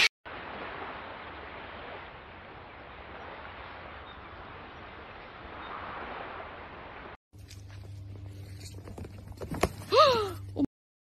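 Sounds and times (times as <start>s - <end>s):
horse hooves on dirt: 7.4s - 9.9s.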